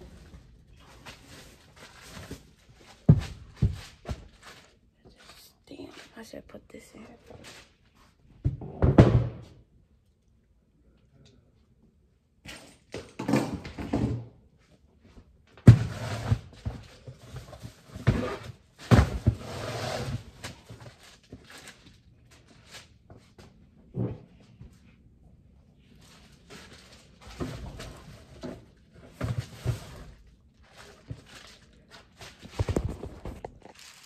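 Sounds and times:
footsteps: 0:00.0 - 0:08.2
knocks and thuds of belongings: 0:00.9 - 0:04.7, 0:08.4 - 0:09.6, 0:12.4 - 0:14.3, 0:15.6 - 0:19.4, 0:31.0 - 0:34.0.

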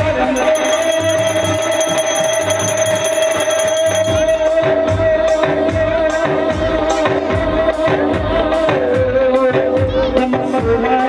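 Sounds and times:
devotional music with a beat: 0:00.1 - 0:11.0
hand bell ringing rapidly: 0:00.3 - 0:05.0.

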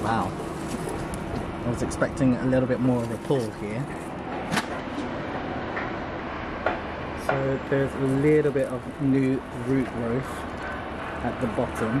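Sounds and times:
city background noise: 0:00.0 - 0:12.0.

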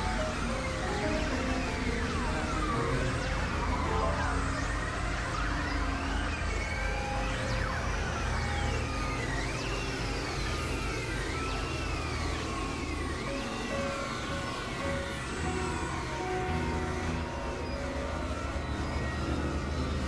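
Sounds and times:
dense low drone: 0:00.0 - 0:20.0
held synth tones: 0:00.0 - 0:20.0.

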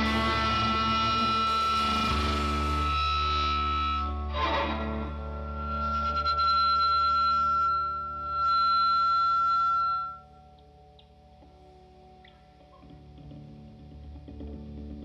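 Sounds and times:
live rock band playing: 0:00.0 - 0:06.4
faint lingering tone: 0:00.0 - 0:12.5
sustained electric guitar notes: 0:00.0 - 0:15.0.

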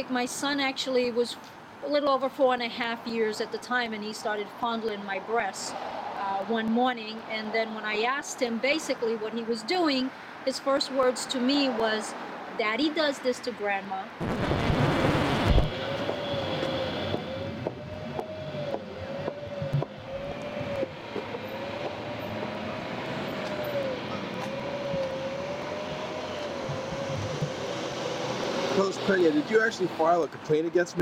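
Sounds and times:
city street traffic: 0:00.0 - 0:31.0
vehicle rushing past: 0:14.2 - 0:30.5.

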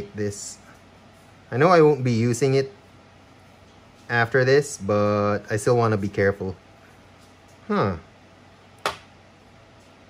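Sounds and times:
faint background hum: 0:00.0 - 0:10.0
sharp click: 0:08.8 - 0:09.1.

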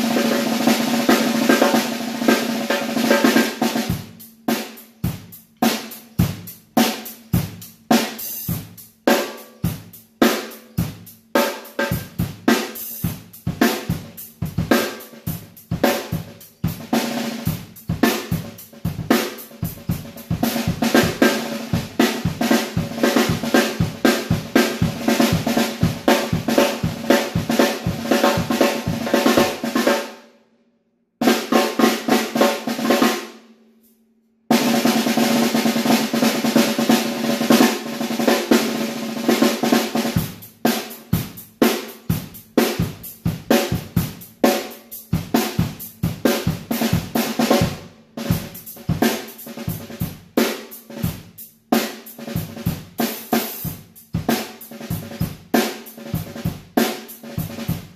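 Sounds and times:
snare drum rolls: 0:00.0 - 0:30.2, 0:31.2 - 0:33.4, 0:34.5 - 0:57.9.

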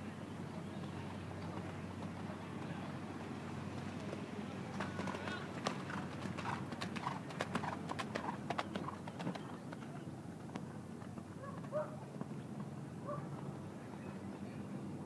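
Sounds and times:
faint voices: 0:00.0 - 0:07.8, 0:08.8 - 0:15.0
horse hoofbeats on dirt: 0:03.7 - 0:13.6.

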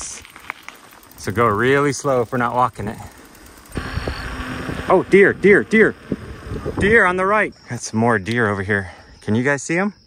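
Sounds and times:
bicycle tyres on paved road: 0:00.0 - 0:09.6
wind rushing: 0:03.7 - 0:07.3.

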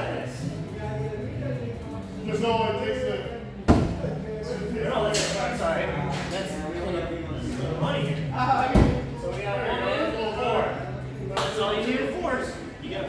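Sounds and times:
voices talking: 0:00.0 - 0:13.0.

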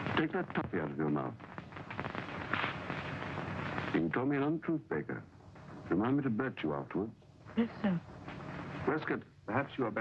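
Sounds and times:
crackling film soundtrack hiss: 0:00.0 - 0:10.0
dialogue: 0:00.1 - 0:10.0.

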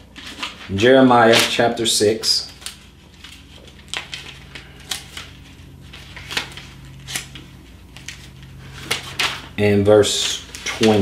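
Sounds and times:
paper pages rustling: 0:00.0 - 0:01.6, 0:02.5 - 0:11.0
low steady hum: 0:00.0 - 0:11.0.

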